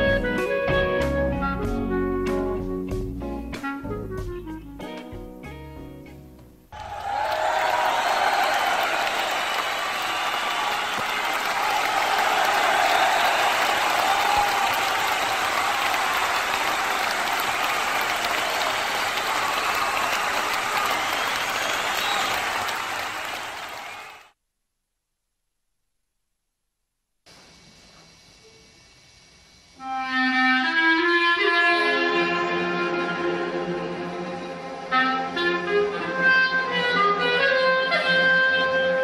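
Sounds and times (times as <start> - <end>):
audience applauding: 6.7 - 24.4.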